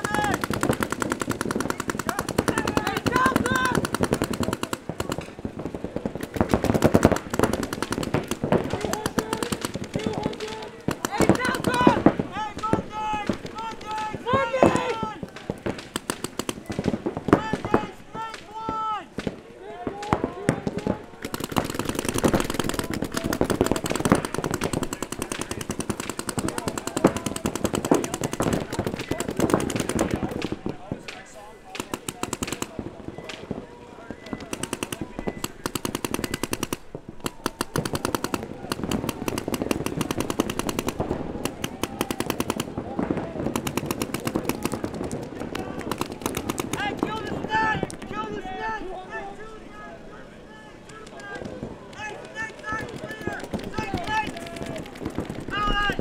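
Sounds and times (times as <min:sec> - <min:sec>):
paintball markers rapid firing: 0:00.0 - 0:33.6, 0:34.2 - 0:48.1, 0:50.8 - 0:56.0
players shouting: 0:00.0 - 0:56.0.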